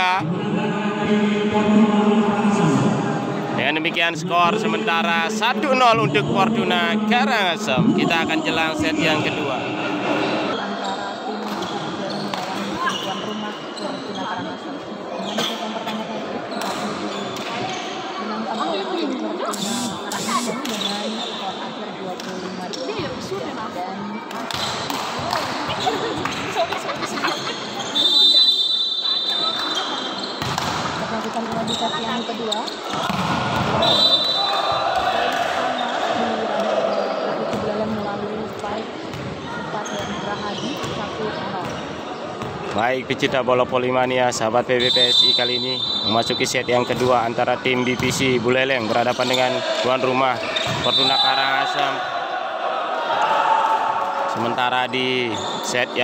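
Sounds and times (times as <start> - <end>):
echoing voices and chatter: 0.0 - 56.0
volleyballs bouncing on court: 24.3 - 27.2, 30.4 - 34.0.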